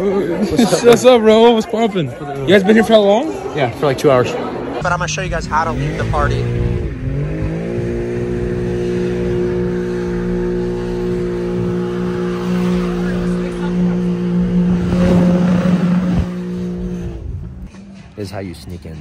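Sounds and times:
car engine at high revs: 4.8 - 17.8
rough tire noise: 4.8 - 17.8.

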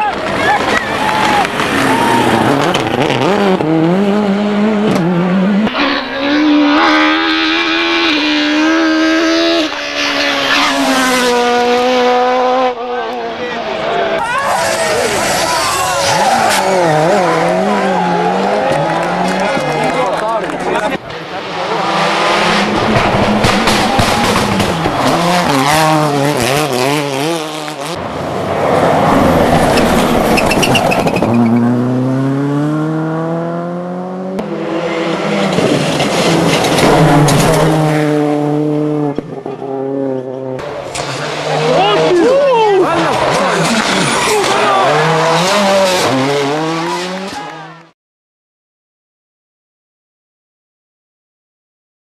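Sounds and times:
rally cars revving past: 0.1 - 47.9.

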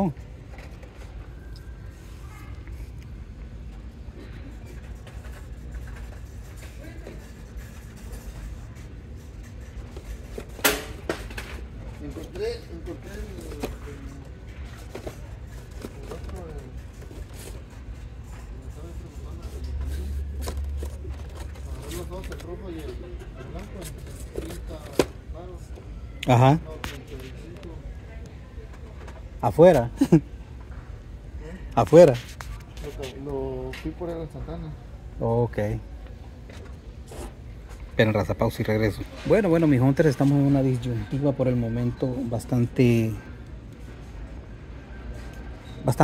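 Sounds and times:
steady low hum: 0.0 - 45.7
faint indistinct voices: 0.0 - 46.0.

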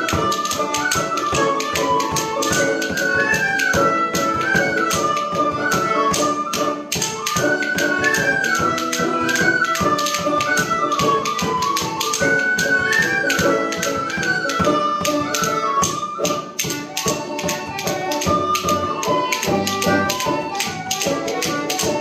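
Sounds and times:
banjo: 0.0 - 22.0
frame drum tapping beat: 0.0 - 22.0
tin whistles melody: 0.0 - 22.0.

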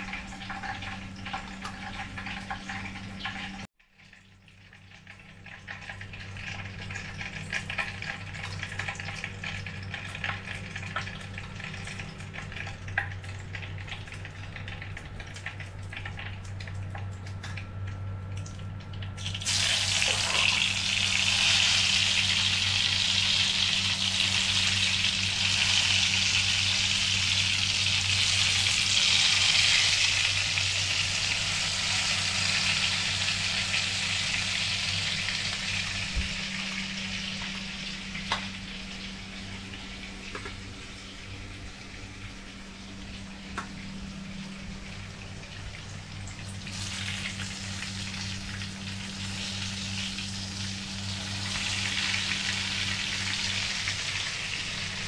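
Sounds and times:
food sizzling in hot oil: 19.2 - 40.2, 45.8 - 55.0.

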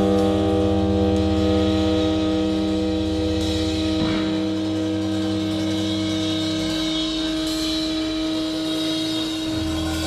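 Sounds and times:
held drone tones: 0.0 - 10.0.

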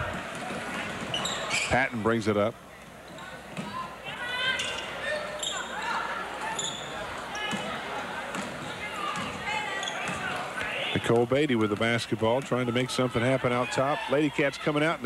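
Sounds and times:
crowd talking: 0.0 - 15.0
sneakers squeaking: 0.3 - 1.8, 3.0 - 10.9.

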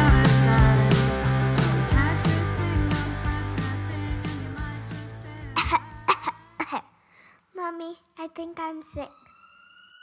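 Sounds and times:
song music: 0.0 - 6.2
person coughing: 5.6 - 6.9.

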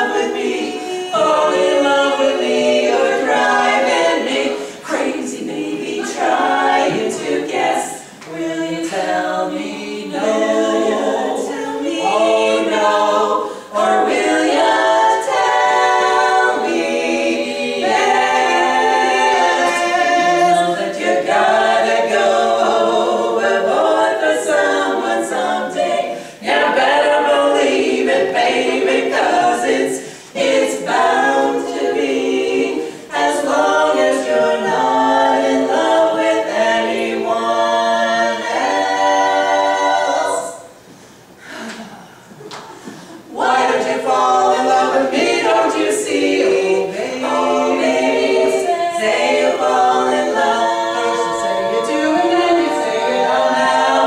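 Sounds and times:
women singing a cappella harmony: 0.0 - 54.0.

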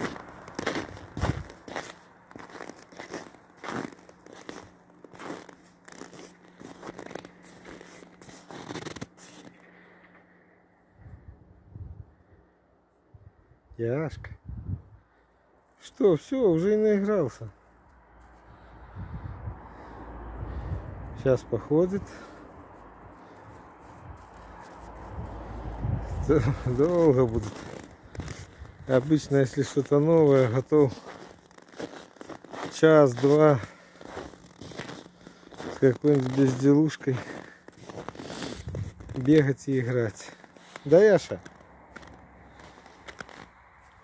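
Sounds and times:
footsteps crunching on snow: 0.0 - 10.0, 17.5 - 18.9, 21.6 - 44.0.

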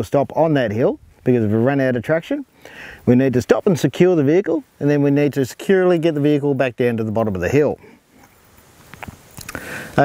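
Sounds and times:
man drawing breath: 2.5 - 3.1, 9.4 - 10.0
faint clicks: 8.2 - 9.6.

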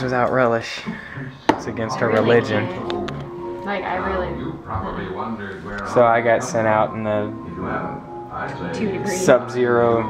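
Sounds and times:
indistinct voices: 0.0 - 10.0
music playing: 0.0 - 10.0.

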